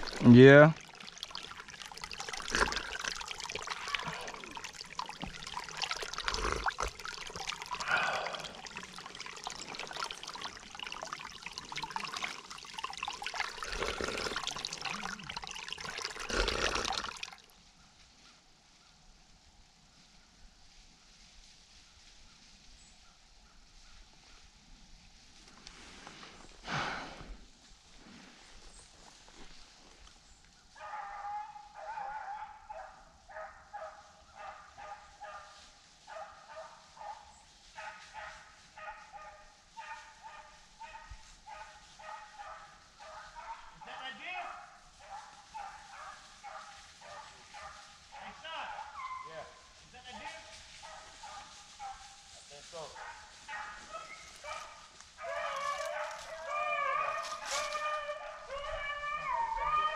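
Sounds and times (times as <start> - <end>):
dogs baying: 44.4 - 49.7, 53.0 - 59.9.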